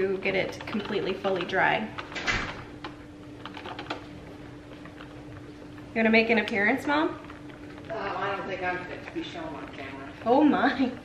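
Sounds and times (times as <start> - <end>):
steady hum: 0.0 - 11.0.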